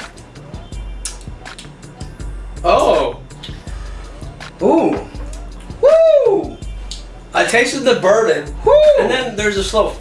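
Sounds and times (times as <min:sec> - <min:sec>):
man exclaiming hooo: 0:04.6 - 0:05.2, 0:05.8 - 0:06.6, 0:08.6 - 0:09.4.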